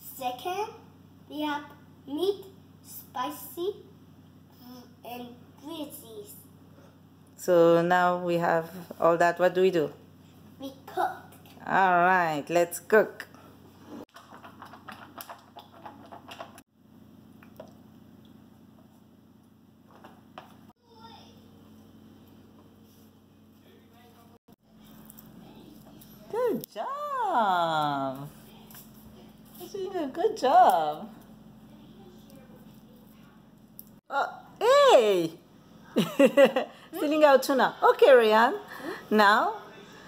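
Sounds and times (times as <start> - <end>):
faint steady hum: 0.0 - 40.0.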